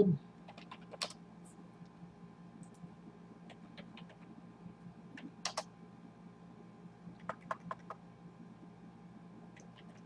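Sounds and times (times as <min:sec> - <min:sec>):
typing on computer keyboard: 0:00.5 - 0:01.2, 0:03.5 - 0:04.2, 0:05.2 - 0:05.7, 0:07.2 - 0:08.0.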